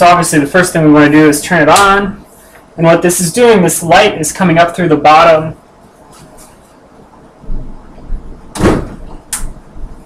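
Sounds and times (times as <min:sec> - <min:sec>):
rustling thump: 0:08.5 - 0:09.2.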